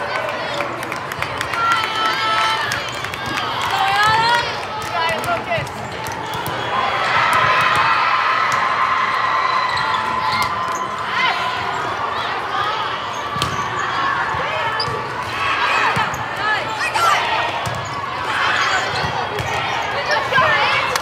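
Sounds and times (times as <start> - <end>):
players and spectators voices: 0.0 - 21.0
volleyballs bouncing on floor: 2.6 - 6.6.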